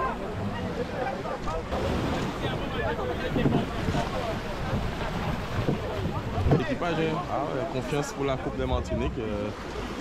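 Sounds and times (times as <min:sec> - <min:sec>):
people talking: 0:00.0 - 0:09.6
small waves washing onto beach: 0:00.0 - 0:10.0
wind on microphone: 0:01.7 - 0:07.0.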